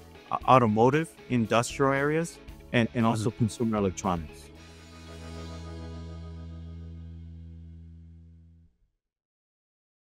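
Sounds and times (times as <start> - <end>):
held chord of background music: 0.0 - 8.2.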